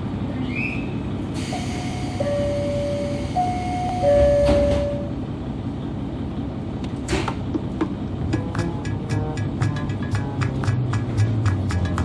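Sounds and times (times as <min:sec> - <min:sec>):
idling diesel engine rumble: 0:00.0 - 0:12.0
two-tone chime: 0:01.7 - 0:05.1.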